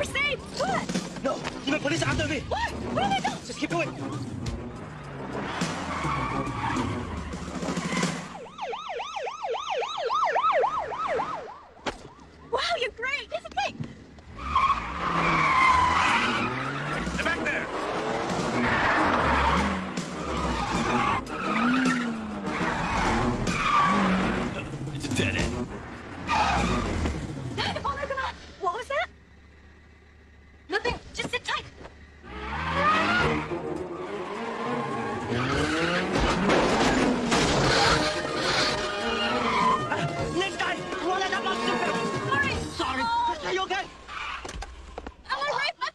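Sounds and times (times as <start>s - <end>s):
car engines revving: 0.0s - 9.2s, 10.2s - 45.2s
tyres skidding: 0.0s - 45.9s
fast-warbling siren: 6.1s - 12.8s.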